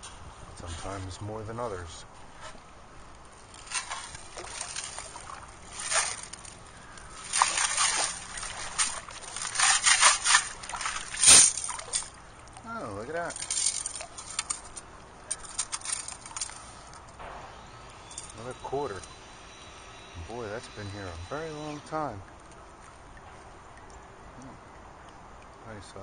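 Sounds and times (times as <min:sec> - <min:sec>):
water sloshing and draining: 0:02.2 - 0:17.2, 0:20.2 - 0:25.6
shells and gravel clicking: 0:03.1 - 0:12.6, 0:13.2 - 0:18.4
sharp knock: 0:17.2 - 0:17.6.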